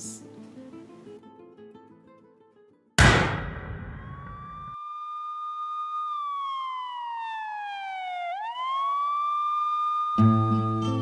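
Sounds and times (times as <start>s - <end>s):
loud bang: 3.0s - 4.8s
siren wailing: 3.7s - 11.0s.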